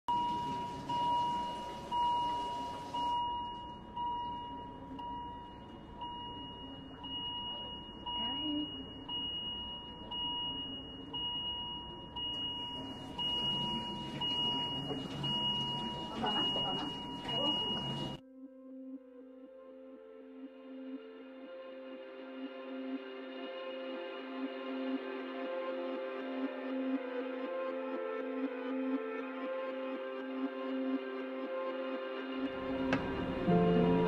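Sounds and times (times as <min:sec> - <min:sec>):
medical monitor beeping: 0:00.1 - 0:18.2.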